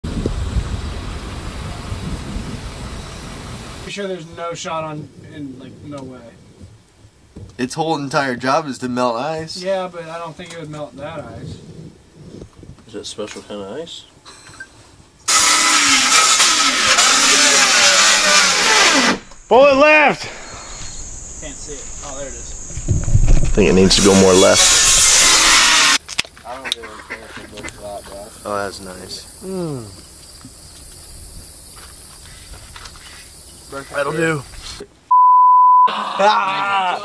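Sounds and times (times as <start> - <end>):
wind buffeting microphone: 0.0 - 3.8, 10.8 - 13.1, 20.3 - 24.6
harsh mechanical motor noise: 15.3 - 19.5, 23.6 - 26.0.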